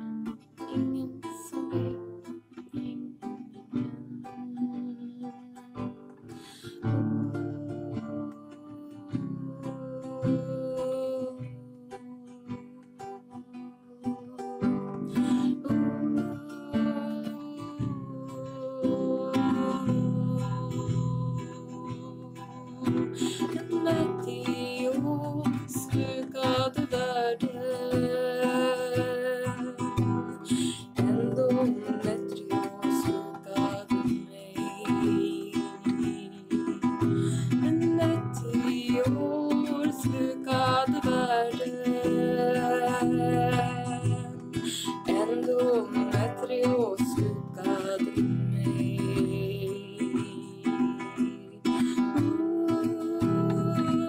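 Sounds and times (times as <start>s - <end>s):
acoustic guitar strumming: 0.0s - 54.0s
person singing: 0.0s - 54.0s.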